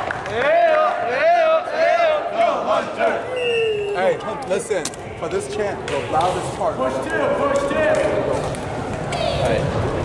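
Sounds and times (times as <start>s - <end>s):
people calling out and talking: 0.3s - 9.9s.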